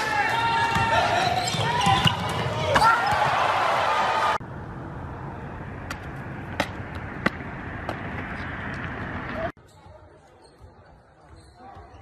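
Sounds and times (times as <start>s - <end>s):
sneakers squeaking: 0.0s - 3.6s, 6.0s - 12.0s
outdoor background noise: 2.6s - 11.9s.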